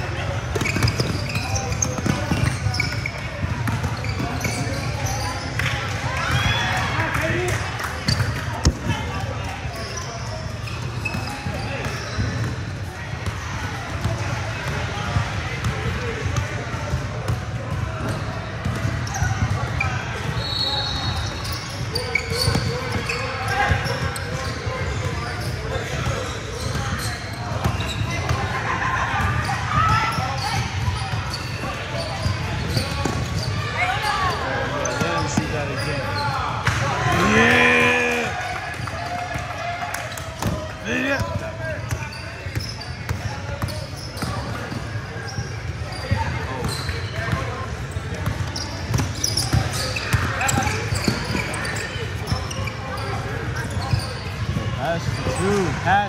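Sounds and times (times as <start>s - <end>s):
indistinct shouts and chatter: 0.0s - 56.0s
loud shout: 36.9s - 40.0s.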